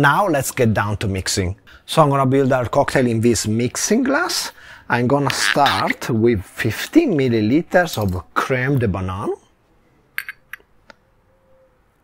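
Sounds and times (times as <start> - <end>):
glass clinking on metal: 10.2 - 10.7.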